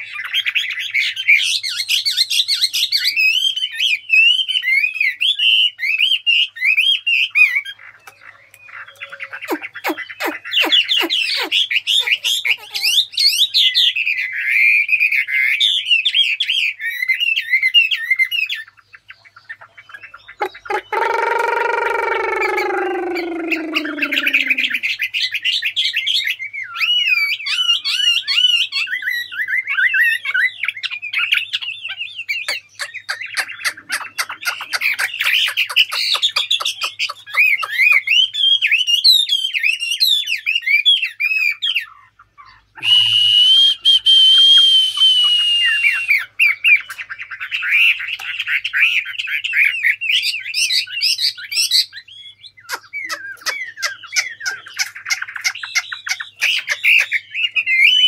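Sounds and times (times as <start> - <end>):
songbird singing whistled notes: 0.0 - 58.0.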